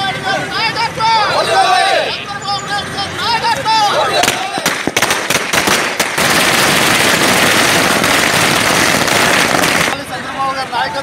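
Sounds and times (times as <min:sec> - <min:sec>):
firecrackers banging and crackling: 0:04.2 - 0:10.1.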